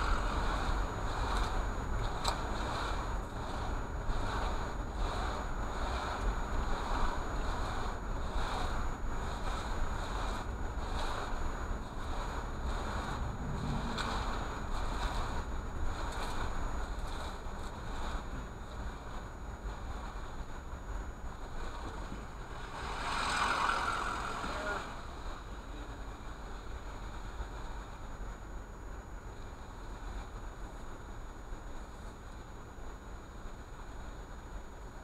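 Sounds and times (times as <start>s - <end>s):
rushing noise: 0.0s - 27.6s
car engine and tyres rumbling: 0.0s - 35.0s.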